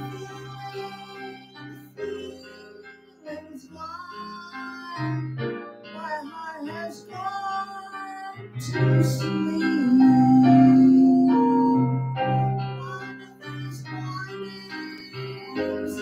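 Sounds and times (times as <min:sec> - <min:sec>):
karaoke backing track with piano: 0:00.0 - 0:16.0
man singing into microphone: 0:06.0 - 0:16.0.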